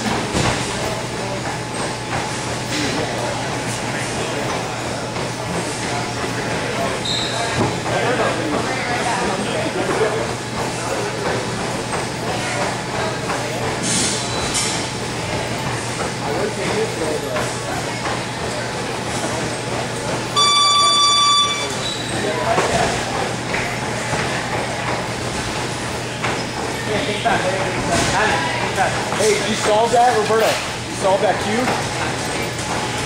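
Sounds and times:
room hum: 0.0 - 33.0
electronic beep: 20.4 - 22.0.

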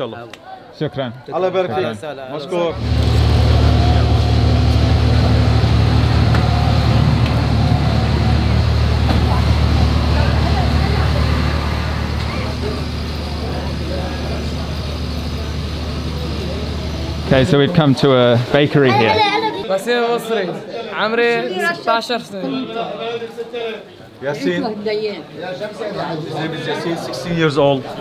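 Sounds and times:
street noise: 0.0 - 28.0
engine idling: 2.8 - 17.5.

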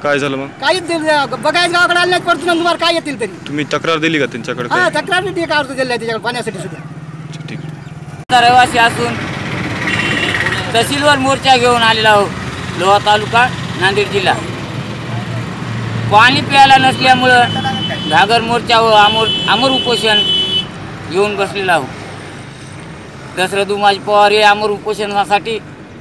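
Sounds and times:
man speaking: 0.0 - 7.7, 8.3 - 9.2, 10.7 - 14.5, 16.0 - 20.5.

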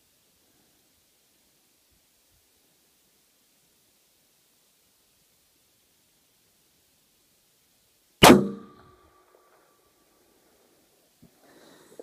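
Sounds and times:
rifle shot: 8.2 - 9.6.

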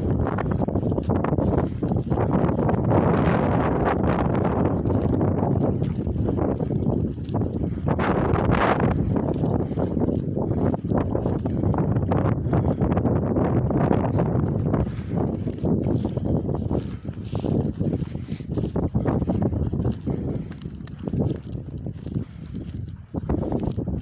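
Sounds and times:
footsteps through dry grass: 0.0 - 24.0
wind buffeting microphone: 0.0 - 24.0.

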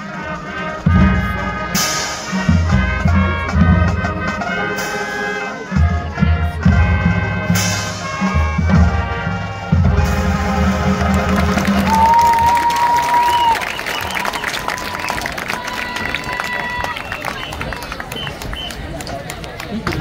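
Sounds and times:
marching band chord: 0.0 - 12.0
crowd applauding and cheering: 10.5 - 20.0
long high whistle: 11.9 - 15.2.

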